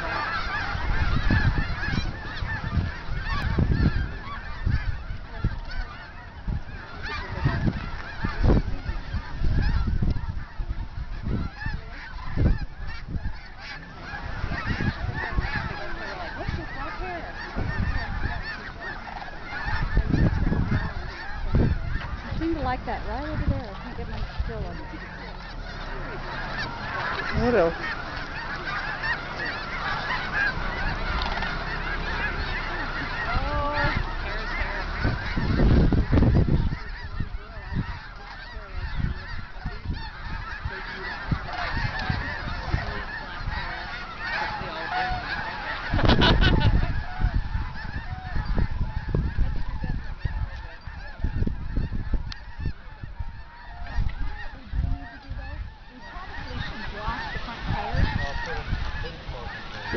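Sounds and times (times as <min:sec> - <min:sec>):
geese and cranes honking: 0:00.0 - 0:59.9.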